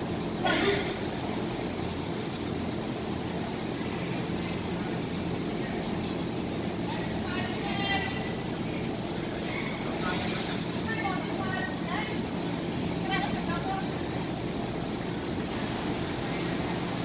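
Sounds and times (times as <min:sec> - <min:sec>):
constant hum: 0:00.0 - 0:17.0.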